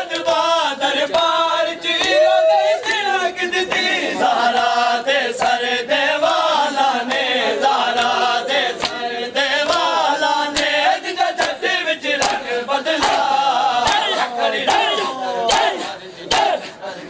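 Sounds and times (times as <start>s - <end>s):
men chanting in chorus: 0.0s - 17.0s
hands slapping chests: 8.8s - 9.0s, 9.6s - 9.9s, 10.5s - 10.8s, 11.4s - 16.7s.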